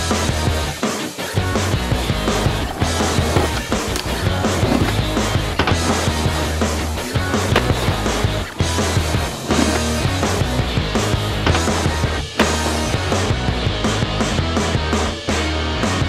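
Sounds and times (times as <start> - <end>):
loud rock music: 0.0 - 16.0
skateboard rolling on pavement: 0.0 - 16.0
skateboard knocks: 2.0 - 13.5.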